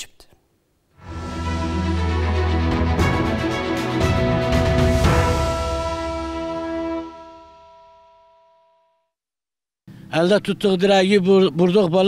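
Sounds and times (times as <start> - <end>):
theme music final chord: 1.0 - 8.9.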